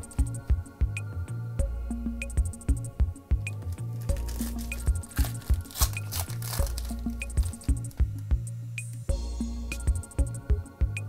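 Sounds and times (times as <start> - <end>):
music with steady beat: 0.0 - 11.0
wrapper tearing and crinkling: 3.5 - 7.9.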